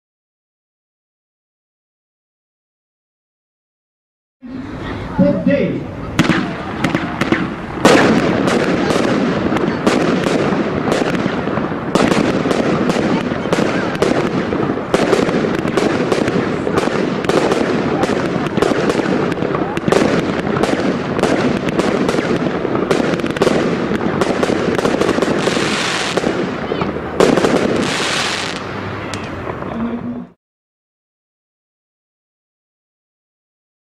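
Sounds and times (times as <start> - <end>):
fireworks barrage: 4.5 - 30.4.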